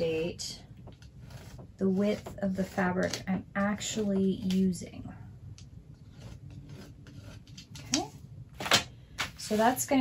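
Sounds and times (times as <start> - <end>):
pen scratching on paper: 1.2 - 3.4, 6.0 - 7.5.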